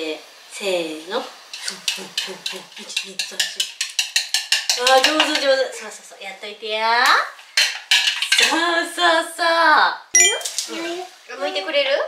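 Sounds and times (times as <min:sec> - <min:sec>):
sharp glass clinks: 0:10.2 - 0:10.5.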